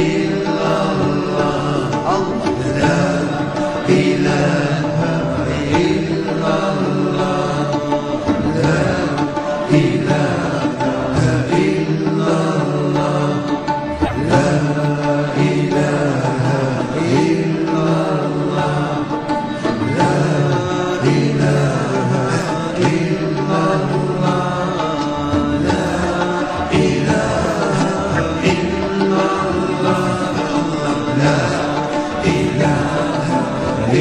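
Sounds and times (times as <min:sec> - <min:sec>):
voice chanting long bending notes: 0:00.0 - 0:34.0.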